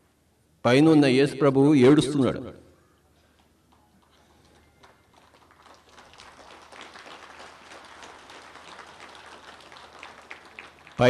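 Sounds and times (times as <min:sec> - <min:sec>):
crowd applause: 0:04.0 - 0:11.0.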